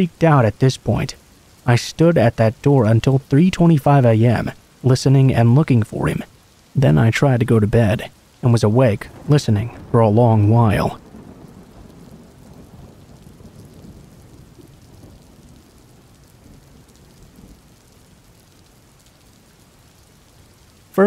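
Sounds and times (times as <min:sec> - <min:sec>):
rain falling: 0:00.0 - 0:21.0
thunder rumbling: 0:06.0 - 0:17.8.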